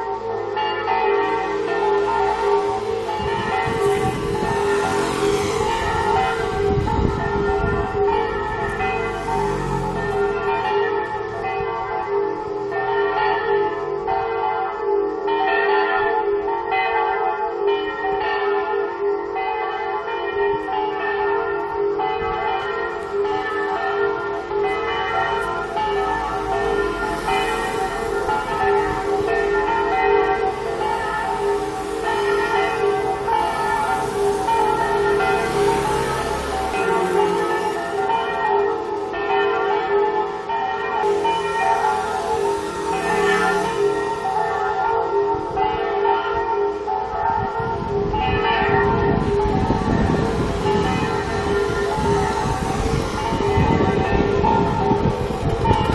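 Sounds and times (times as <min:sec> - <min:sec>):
church bells pealing over loudspeakers: 0:00.0 - 0:55.9
car passing: 0:01.4 - 0:12.0, 0:24.3 - 0:39.2, 0:41.0 - 0:45.0.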